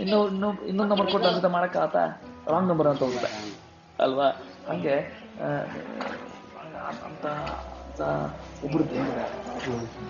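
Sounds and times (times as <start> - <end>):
man speaking: 0.0 - 5.9
background music: 0.0 - 10.0.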